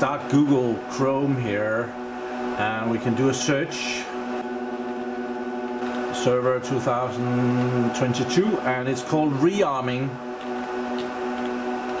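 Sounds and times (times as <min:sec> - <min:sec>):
server cooling fans humming: 0:00.0 - 0:12.0.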